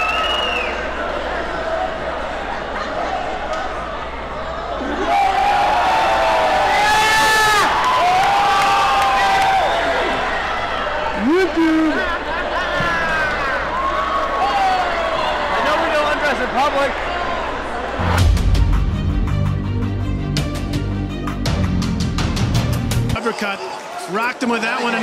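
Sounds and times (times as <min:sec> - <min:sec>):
crowd shouting and cheering: 0:00.0 - 0:25.0
theme music: 0:17.9 - 0:23.4.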